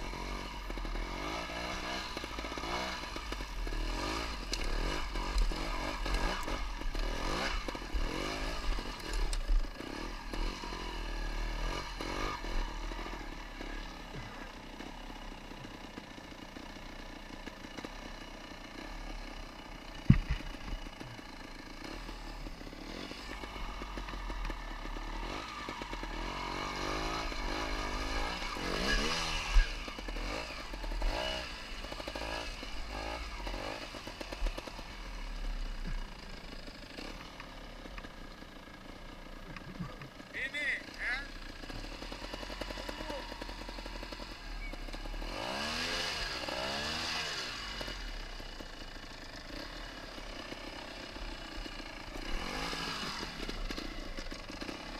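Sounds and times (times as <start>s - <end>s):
motorcycle engine revving: 0.0s - 54.9s.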